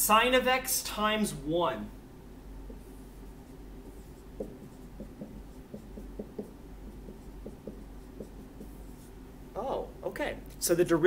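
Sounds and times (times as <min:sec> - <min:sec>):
marker writing on whiteboard: 0:02.6 - 0:09.3.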